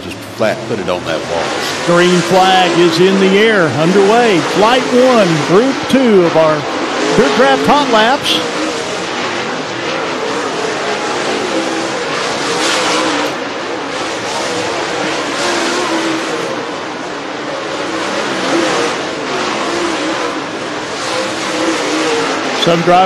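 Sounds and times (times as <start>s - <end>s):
race car engines: 0.0s - 23.0s.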